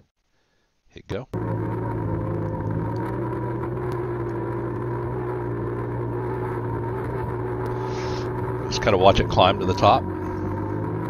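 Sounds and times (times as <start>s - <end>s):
off-road vehicle engine running: 1.3s - 11.0s.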